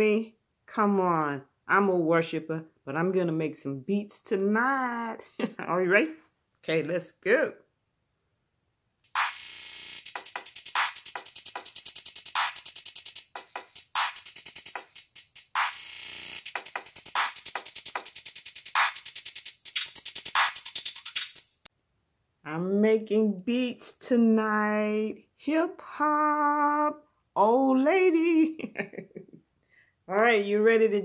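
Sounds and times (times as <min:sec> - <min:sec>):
electronic drum machine beat: 0:09.1 - 0:21.7.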